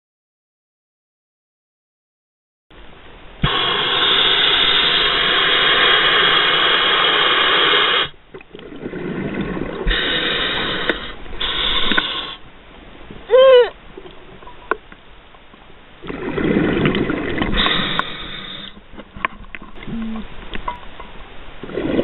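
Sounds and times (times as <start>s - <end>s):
breathing hiss: 3.4s - 8.2s, 9.8s - 12.5s, 17.5s - 18.8s
underwater bubbles rushing: 8.3s - 12.1s, 16.0s - 20.7s, 21.6s - 22.0s.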